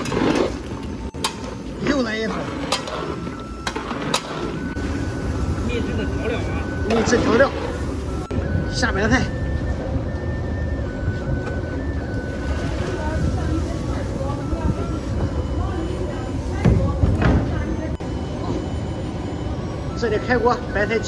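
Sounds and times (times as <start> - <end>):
quiet background music: 0.0 - 21.0.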